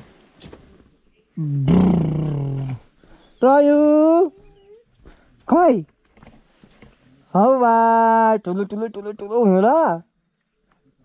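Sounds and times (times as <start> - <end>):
low drawn-out call: 1.4 - 2.9.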